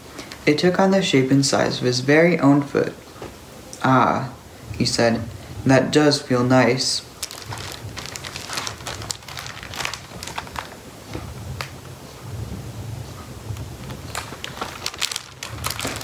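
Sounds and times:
paper rustling: 7.1s - 11.8s, 13.7s - 16.0s.

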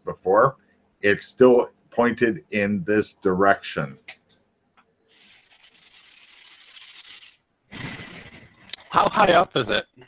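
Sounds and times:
microphone rubbing hiss: 5.2s - 9.4s.

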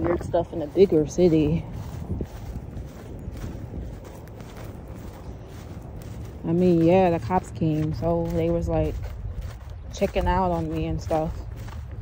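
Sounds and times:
footsteps on dry grass: 0.0s - 12.0s.

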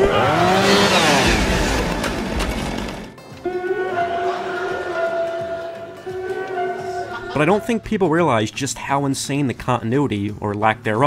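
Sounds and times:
chainsaw engine running: 0.0s - 3.2s
person laughing: 6.6s - 7.8s.

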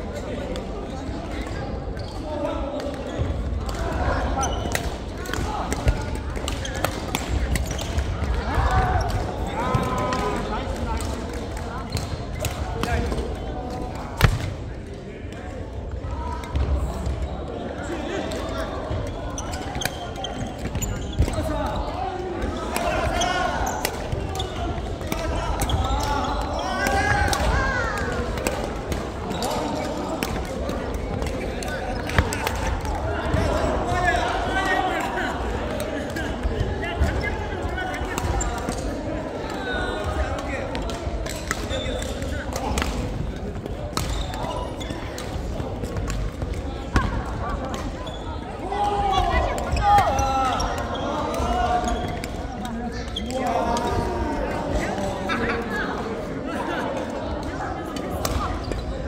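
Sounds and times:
voices echoing in a hall: 0.0s - 59.0s
badminton rackets hitting shuttlecock: 4.5s - 9.2s, 22.6s - 33.5s, 43.9s - 47.9s.

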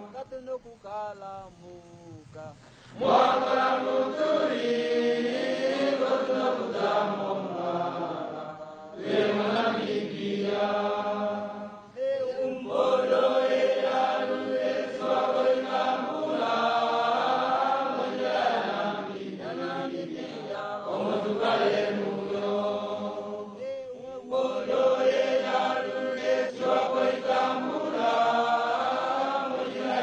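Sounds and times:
crowd chanting in unison: 2.9s - 30.0s.

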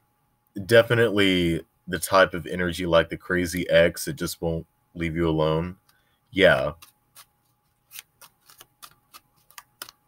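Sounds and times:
cards being shuffled: 6.5s - 10.0s.

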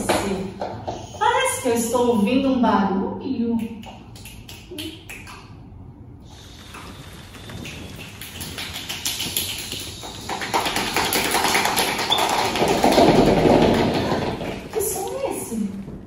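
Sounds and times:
hands clapping and patting: 3.6s - 5.5s, 6.8s - 15.0s.

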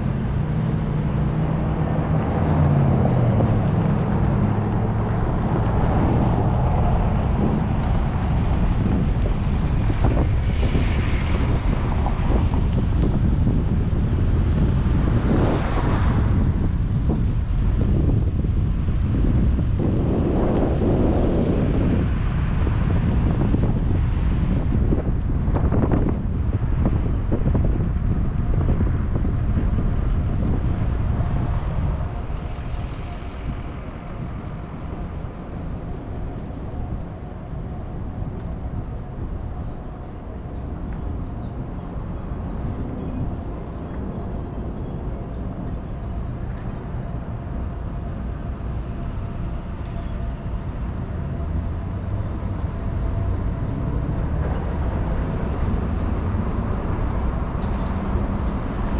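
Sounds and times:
car engine and tyre rumble: 0.0s - 58.9s
wind buffeting microphone: 0.0s - 58.9s.

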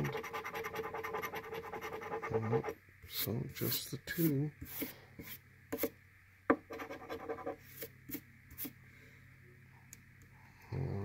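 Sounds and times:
coin scratching paper ticket: 0.0s - 2.7s.

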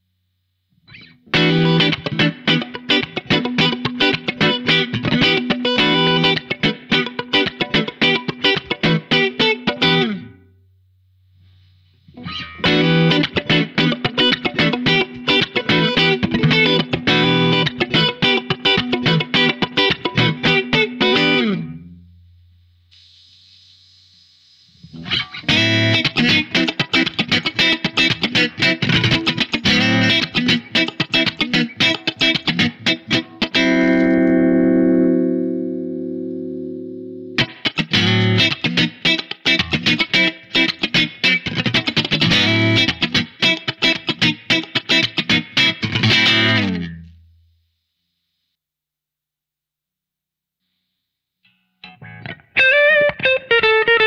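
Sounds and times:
electric guitar notes and chords: 0.9s - 10.5s, 12.1s - 22.2s, 24.9s - 47.2s, 51.8s - 54.0s.

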